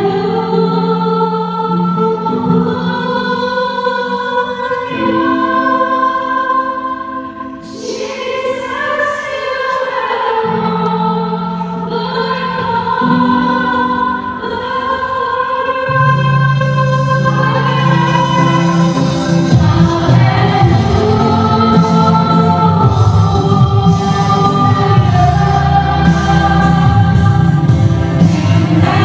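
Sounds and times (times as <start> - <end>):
live worship music: 0.0 - 29.0
people singing: 0.0 - 29.0.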